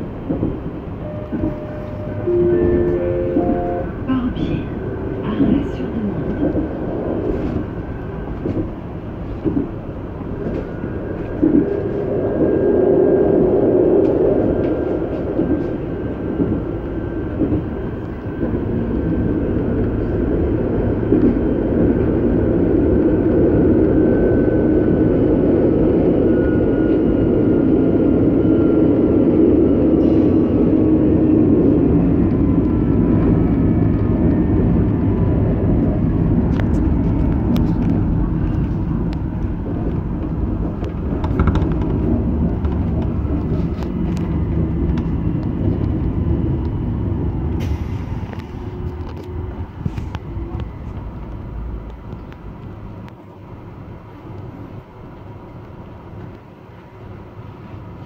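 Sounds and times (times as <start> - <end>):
train wheels rumbling on track: 0.0 - 58.0
sharp clicks and knocks: 39.8 - 46.0.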